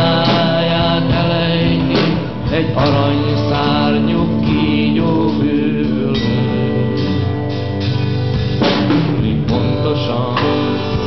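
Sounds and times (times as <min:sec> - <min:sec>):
live rock band playing: 0:00.0 - 0:11.0
loud drum and cymbal hit: 0:00.0 - 0:11.0.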